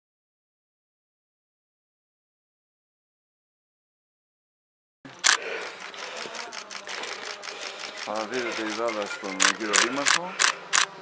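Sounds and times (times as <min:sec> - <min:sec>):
camera shutter clicks: 0:05.1 - 0:11.0
faint voices of people: 0:05.1 - 0:11.0.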